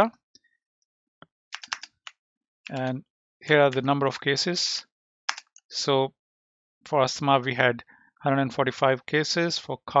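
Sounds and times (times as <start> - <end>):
keyboard keystrokes: 1.6 - 1.9.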